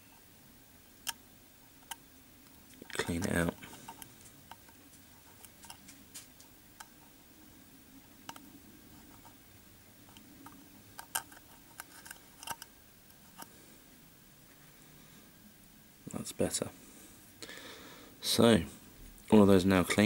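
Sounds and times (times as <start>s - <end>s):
pin clicking and scraping in burner: 10.1s - 13.5s.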